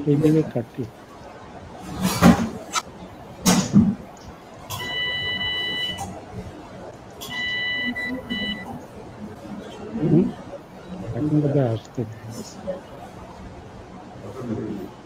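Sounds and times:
electronic beep tone: 0:04.8 - 0:06.0, 0:07.3 - 0:08.7.

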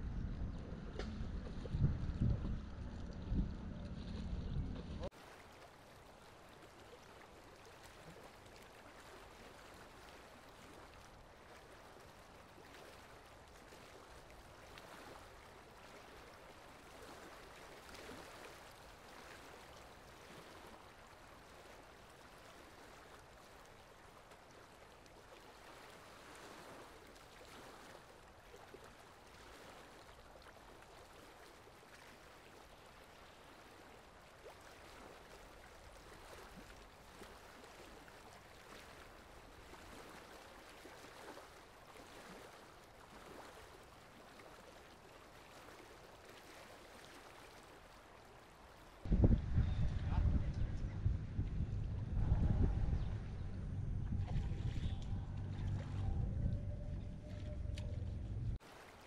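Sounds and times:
wind buffeting microphone: 0:00.0 - 0:05.1, 0:49.1 - 0:58.6
river water splashing: 0:00.0 - 0:49.2, 0:51.3 - 0:59.0.

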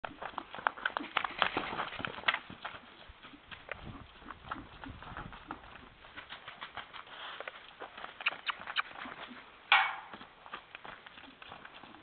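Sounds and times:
hoofbeats on dirt and gravel: 0:00.0 - 0:12.0.

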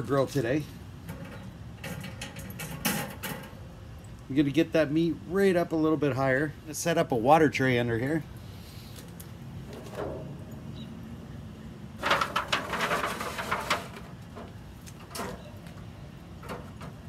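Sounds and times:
steel grill racks clinking: 0:00.0 - 0:03.7, 0:09.7 - 0:10.8, 0:12.0 - 0:17.0
aluminium foil tray crinkling: 0:12.0 - 0:14.4.

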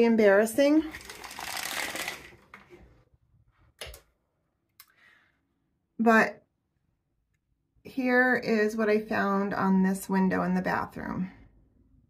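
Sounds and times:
blinds rustling rattle: 0:00.9 - 0:02.9.

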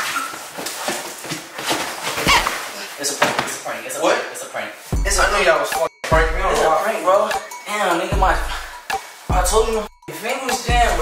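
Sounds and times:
bodies thumping on couch cushions: 0:01.2 - 0:03.6.

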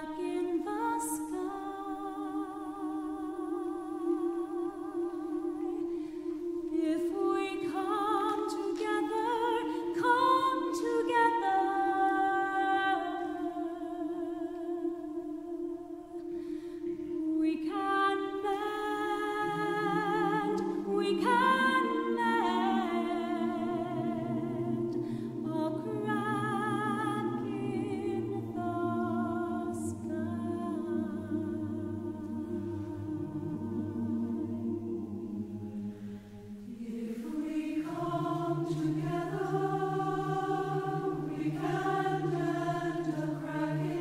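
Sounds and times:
mixed choir singing: 0:00.0 - 0:44.0.

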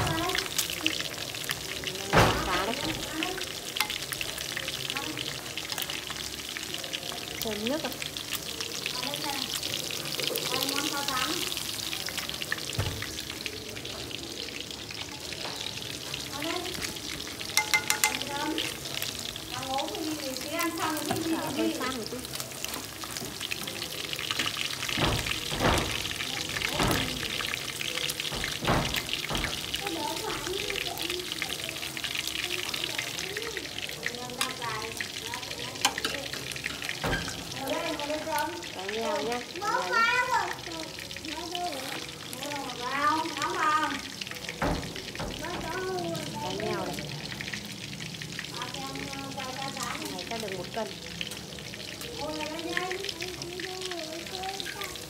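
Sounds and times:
fish frying in hot oil: 0:00.0 - 0:55.0.

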